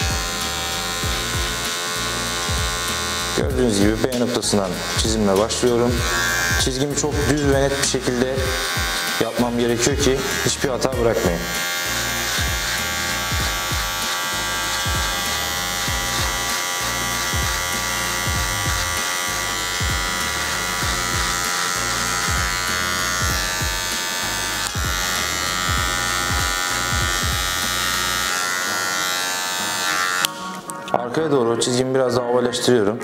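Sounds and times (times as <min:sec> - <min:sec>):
electric hair clipper buzzing: 0:00.0 - 0:30.8.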